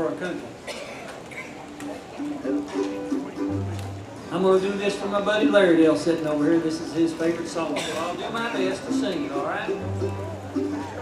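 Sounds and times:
plucked acoustic strings: 0:02.4 - 0:06.0, 0:07.8 - 0:11.0.

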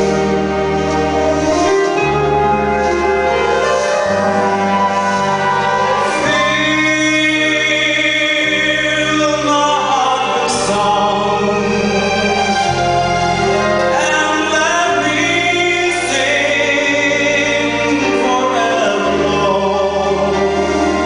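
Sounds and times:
orchestra playing: 0:00.0 - 0:21.0
man singing into a microphone: 0:06.0 - 0:12.8, 0:13.8 - 0:21.0.

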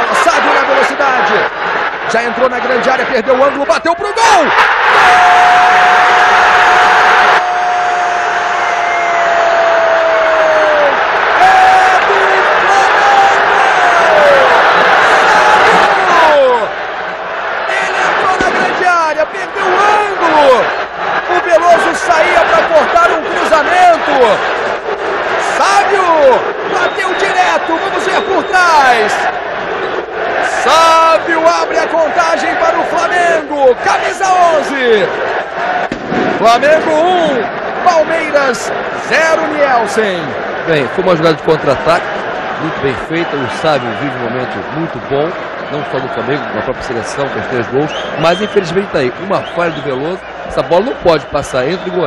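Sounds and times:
stadium crowd cheering: 0:00.0 - 0:52.0.

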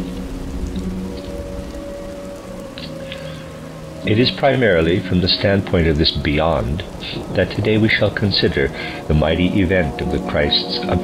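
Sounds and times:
low synth tones: 0:00.0 - 0:10.2
faint crackling noise: 0:00.0 - 0:11.0.

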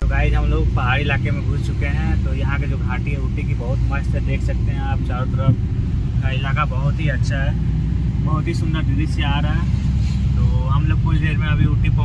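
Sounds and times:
people talking: 0:00.0 - 0:05.6, 0:06.2 - 0:07.6, 0:08.2 - 0:09.7, 0:10.4 - 0:12.0
car engine and road noise: 0:00.0 - 0:12.0.

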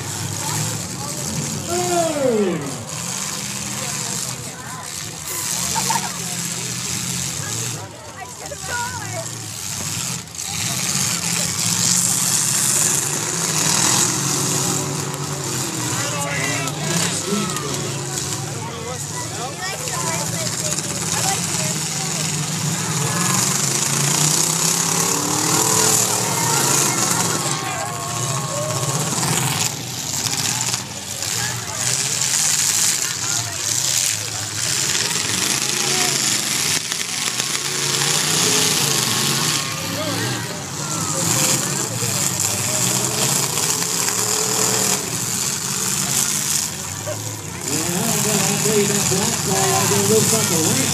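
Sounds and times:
car engines revving: 0:00.0 - 0:50.9
crowd voices: 0:00.0 - 0:50.9.

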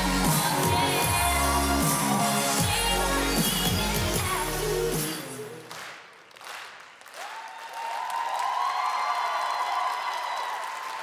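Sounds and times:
audience applauding: 0:05.6 - 0:11.0.

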